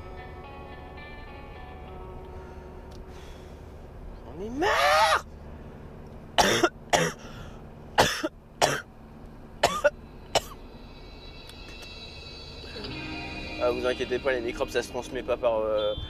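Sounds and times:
man straining vocally: 0:04.5 - 0:05.2
man coughing: 0:06.4 - 0:07.2, 0:08.0 - 0:08.9, 0:09.6 - 0:10.6.

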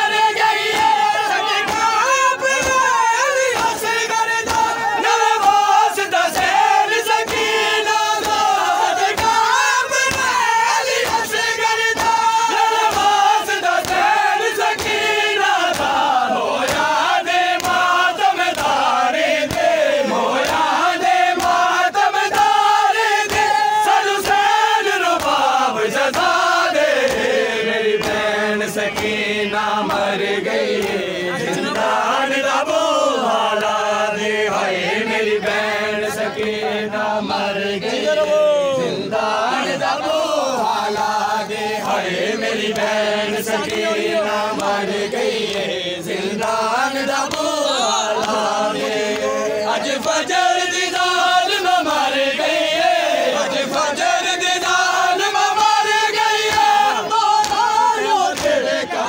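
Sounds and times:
men chanting a lament: 0:00.0 - 0:59.0
hands slapping chests: 0:00.3 - 0:34.7, 0:39.2 - 0:50.3, 0:54.5 - 0:59.0.

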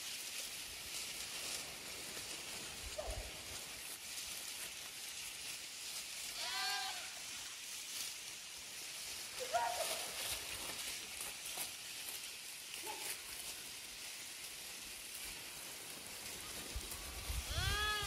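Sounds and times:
steady high hiss: 0:00.0 - 0:18.0
sheep bleating: 0:17.5 - 0:18.0.

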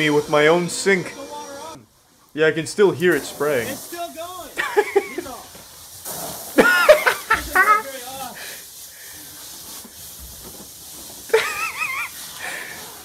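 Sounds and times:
water spraying hard: 0:00.0 - 0:01.8, 0:02.4 - 0:13.0.

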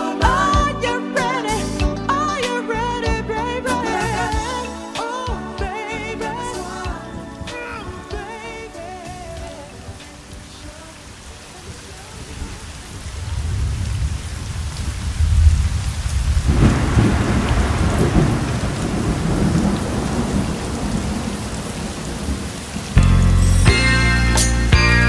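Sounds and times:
music: 0:00.0 - 0:11.7, 0:23.0 - 0:25.0
rain falling: 0:03.9 - 0:25.0
rolling thunder: 0:11.3 - 0:23.0.

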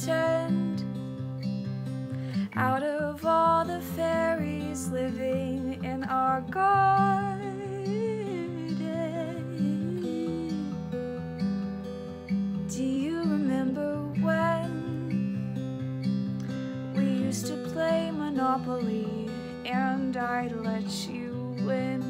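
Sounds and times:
woman singing: 0:00.0 - 0:01.5, 0:02.2 - 0:11.3, 0:12.6 - 0:15.6, 0:16.8 - 0:22.0
acoustic guitar strumming: 0:00.0 - 0:22.0.

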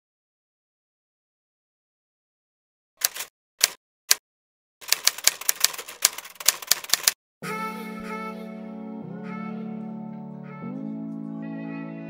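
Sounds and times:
typewriter keys clacking: 0:03.0 - 0:03.8, 0:04.8 - 0:07.2
music with sustained chord: 0:07.4 - 0:12.0.

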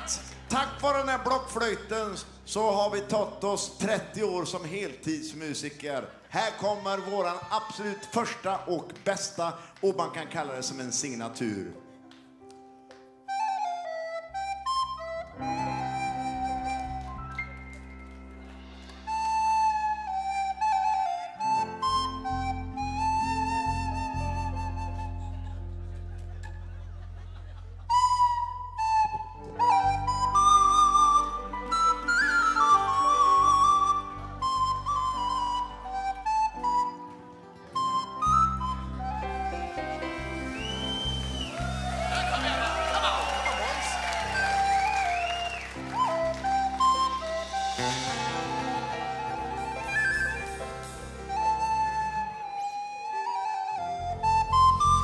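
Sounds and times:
recorder playing melody: 0:13.2 - 0:18.1, 0:18.9 - 0:26.3, 0:27.8 - 0:55.0.

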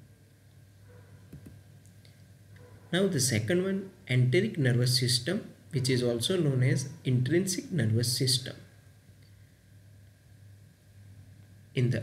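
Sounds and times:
man speaking: 0:03.0 - 0:08.7, 0:11.8 - 0:12.0.

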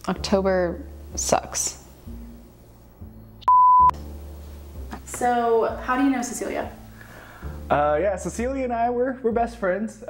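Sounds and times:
censor bleep: 0:03.1 - 0:04.1.

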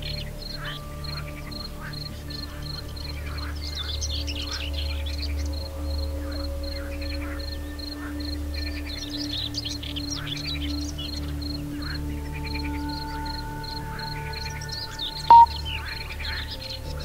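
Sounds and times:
birds chirping and trilling: 0:00.0 - 0:17.0
calm ambient music drone: 0:00.0 - 0:17.0
high pulsing bird call: 0:12.0 - 0:16.7.

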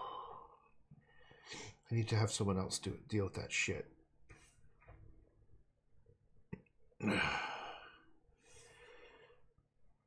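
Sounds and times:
man sighing heavily: 0:07.0 - 0:08.0
soft breath: 0:07.6 - 0:09.6.

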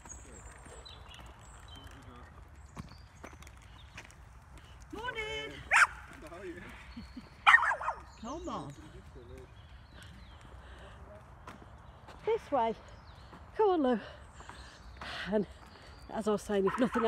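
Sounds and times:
dog barking: 0:05.7 - 0:06.0, 0:07.4 - 0:08.1, 0:16.6 - 0:17.0.

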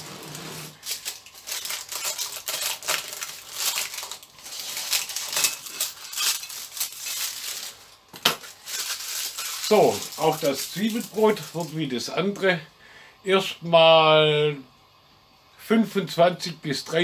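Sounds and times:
baking paper crinkling: 0:00.0 - 0:12.4.

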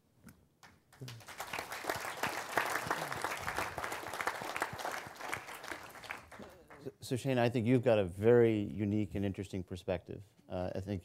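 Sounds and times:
audience applauding: 0:00.9 - 0:06.9.

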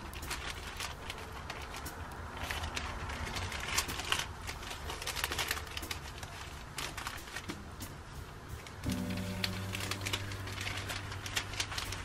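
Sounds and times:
plastic and paper crinkling: 0:00.0 - 0:07.8, 0:08.6 - 0:12.0.

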